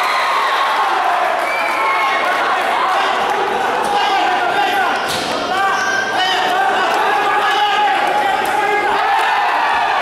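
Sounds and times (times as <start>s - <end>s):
spectators shouting: 0.0s - 10.0s.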